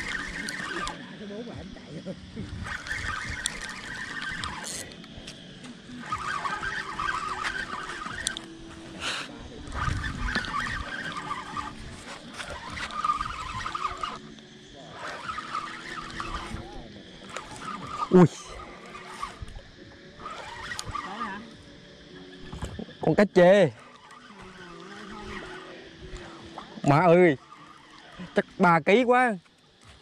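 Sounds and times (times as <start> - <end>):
fishing reel being cranked: 0.0 - 1.5, 2.3 - 29.9.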